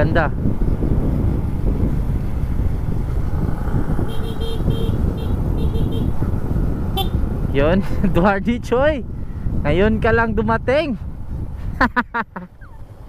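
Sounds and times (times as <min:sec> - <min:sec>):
motorcycle engine rumble: 0:00.0 - 0:10.2
wind on microphone: 0:00.0 - 0:12.0
short horn beeps: 0:04.1 - 0:06.1, 0:07.0 - 0:07.2.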